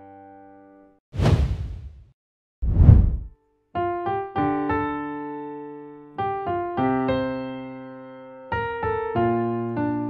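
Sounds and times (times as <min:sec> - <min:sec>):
whoosh sound effect: 0:01.2 - 0:02.0, 0:02.6 - 0:03.3.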